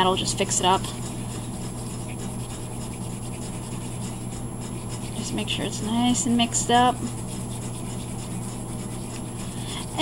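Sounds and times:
steady low hum: 0.0 - 10.0
toothpick stirring resin: 0.0 - 10.0.

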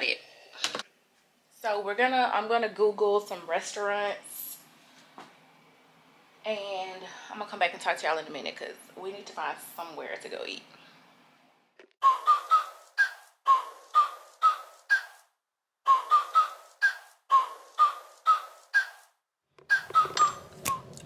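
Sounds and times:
whistled tune: 12.0 - 15.2, 15.8 - 19.1, 19.7 - 21.0.

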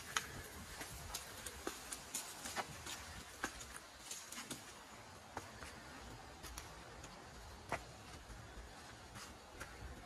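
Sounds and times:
footsteps through grass and dry leaves: 0.0 - 10.0.

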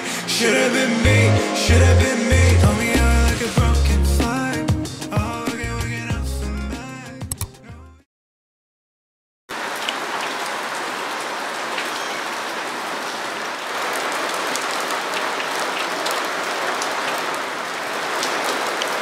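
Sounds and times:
steady rain falling: 9.5 - 19.0.

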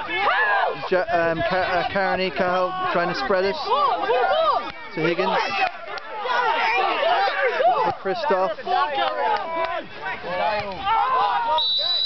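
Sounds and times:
voices: 0.0 - 12.0
referee's whistle: 11.5 - 12.0.

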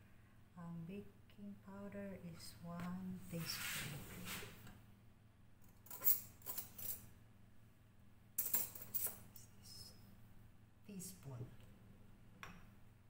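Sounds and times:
metal cutlery clinking: 8.4 - 9.2.

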